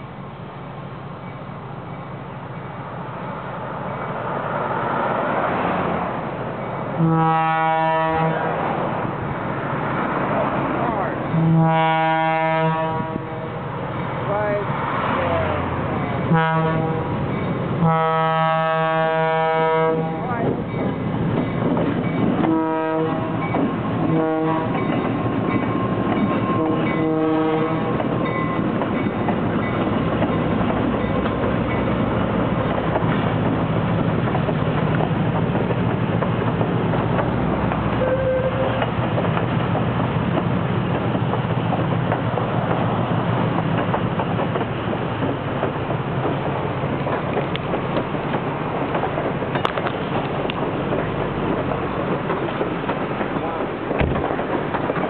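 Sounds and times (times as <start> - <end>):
locomotive engines droning: 0.0 - 55.0
train air horn blasts: 7.0 - 8.5, 11.3 - 13.6, 16.3 - 17.2, 17.8 - 20.4, 22.4 - 23.4, 24.0 - 24.8, 26.5 - 28.0, 38.0 - 38.8
train wheels clacking on rails: 20.2 - 55.0.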